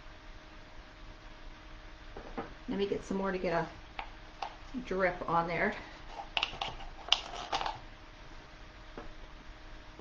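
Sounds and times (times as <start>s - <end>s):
silicone materials clicking and scraping: 6.1s - 7.8s.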